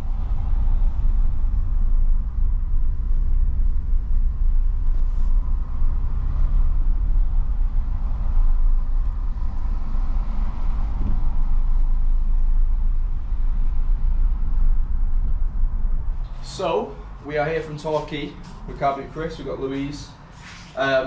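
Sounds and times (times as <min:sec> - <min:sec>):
car cabin engine and tyre rumble: 0:00.0 - 0:21.0.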